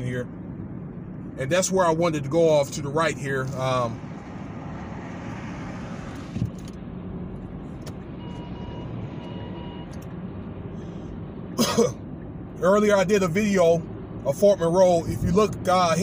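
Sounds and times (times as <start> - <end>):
road and tyre noise in car: 0.0 - 16.0
man coughing: 11.6 - 12.0.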